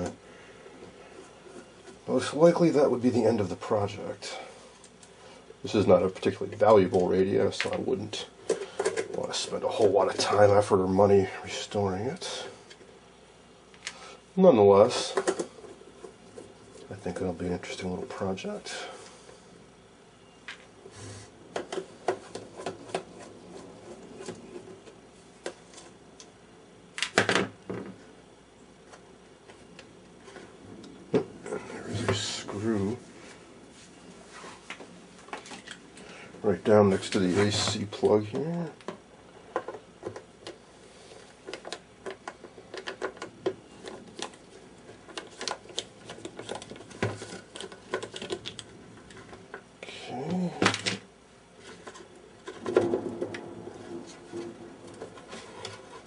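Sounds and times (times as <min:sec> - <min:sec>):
hands handling radio cabinet: 0:41.2 - 0:49.7.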